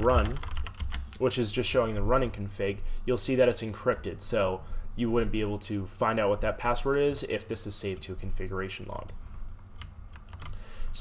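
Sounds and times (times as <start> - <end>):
computer keyboard clicks: 9.8 - 10.6.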